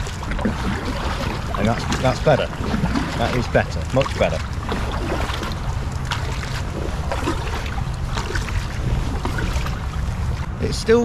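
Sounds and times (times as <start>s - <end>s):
paddle splashing in water: 0.0s - 10.5s
wind rumble on microphone: 0.0s - 11.0s.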